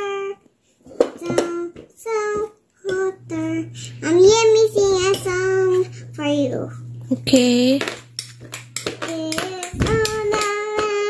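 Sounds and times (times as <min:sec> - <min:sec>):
toddler singing: 0:00.0 - 0:06.8, 0:08.8 - 0:11.0
steady low hum: 0:01.2 - 0:11.0.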